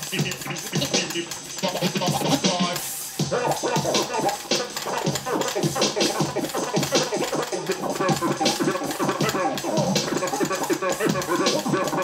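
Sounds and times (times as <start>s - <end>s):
turntable scratching: 0.0s - 12.0s.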